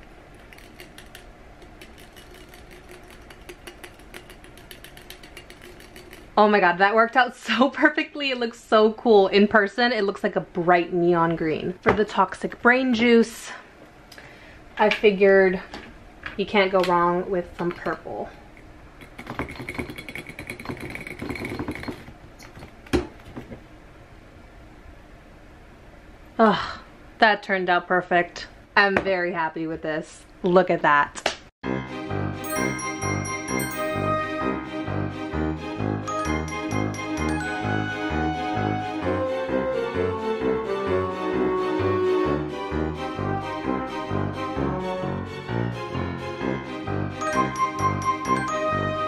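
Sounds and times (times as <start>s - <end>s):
marker tapping inside glass bottle: 0.7s - 6.2s, 19.0s - 22.1s.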